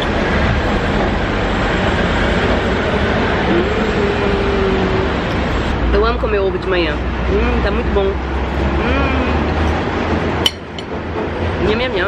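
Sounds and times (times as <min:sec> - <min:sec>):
engine note rising: 0:00.0 - 0:10.5
street traffic passing: 0:00.0 - 0:12.0.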